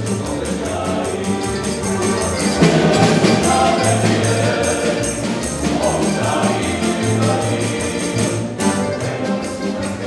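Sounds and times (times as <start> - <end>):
acoustic guitar strumming: 0.0 - 10.0
male vocal ensemble singing: 0.0 - 10.0.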